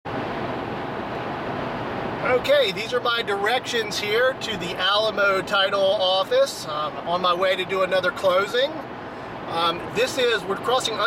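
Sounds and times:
low engine hum: 0:00.1 - 0:11.0.

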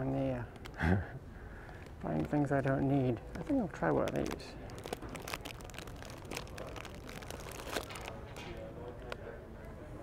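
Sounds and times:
plastic wrappers crinkling: 0:01.7 - 0:08.7.

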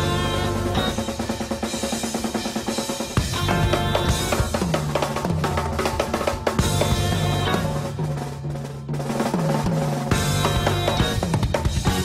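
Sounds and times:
band held notes: 0:00.0 - 0:02.4, 0:03.2 - 0:05.5, 0:06.1 - 0:08.7, 0:10.1 - 0:12.0
fast drum strokes: 0:00.0 - 0:12.0.

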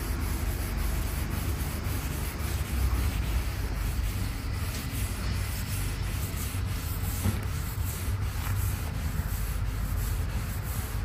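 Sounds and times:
cloth wiping over wood: 0:00.0 - 0:11.0.

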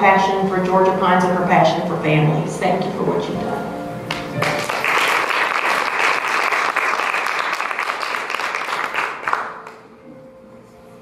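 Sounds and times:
audience applauding: 0:04.1 - 0:09.8.

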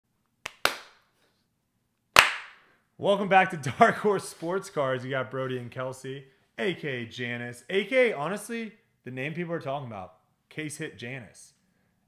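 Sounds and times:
sharp hand claps: 0:00.4 - 0:01.0, 0:02.2 - 0:02.6.

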